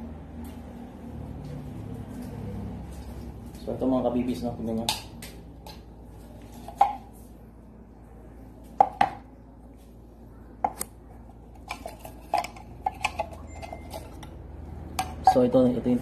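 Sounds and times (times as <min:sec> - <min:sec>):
metal tin cans clinking: 0:11.6 - 0:14.3.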